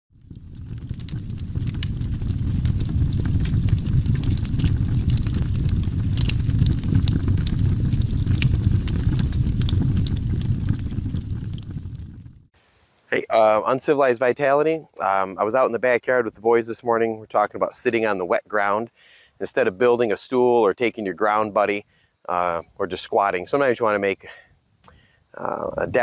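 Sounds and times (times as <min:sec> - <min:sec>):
low rumble with crackles: 0:00.1 - 0:12.5.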